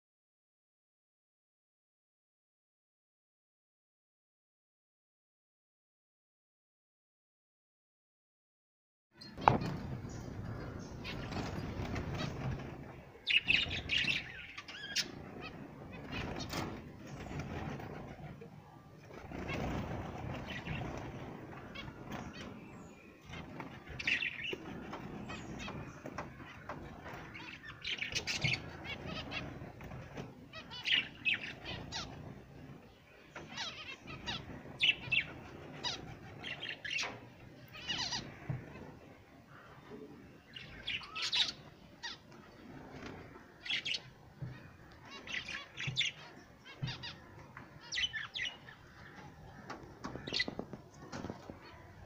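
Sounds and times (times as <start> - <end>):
small birds chirping: 9.2 - 52.0.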